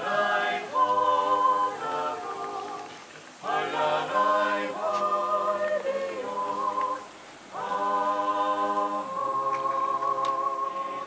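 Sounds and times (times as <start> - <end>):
choir singing in harmony: 0.0 - 11.0.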